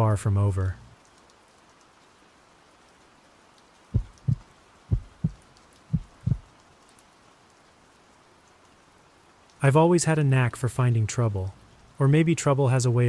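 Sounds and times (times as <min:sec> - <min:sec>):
faint steady rain: 0:00.0 - 0:13.0
heartbeat thumps: 0:04.0 - 0:06.5.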